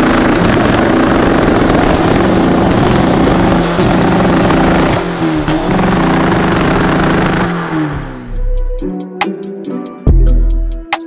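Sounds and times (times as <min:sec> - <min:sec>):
diesel engine on rev limiter: 0:00.0 - 0:08.5.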